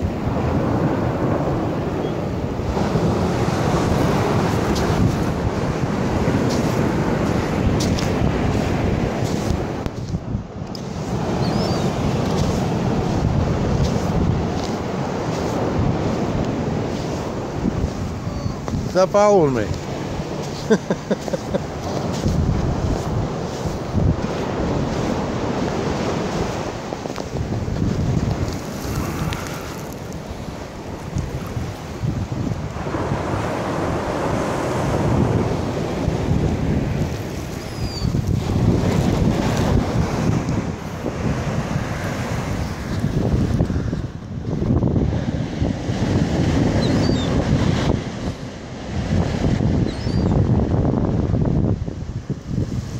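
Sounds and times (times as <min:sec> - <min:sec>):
small surf washing up: 0:00.0 - 0:49.6
wind buffeting microphone: 0:00.0 - 0:52.9.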